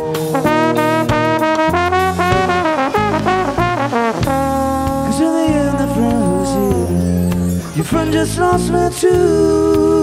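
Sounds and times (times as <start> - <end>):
lead melody line: 0.0 - 7.6
bass: 0.0 - 10.0
drums: 0.0 - 10.0.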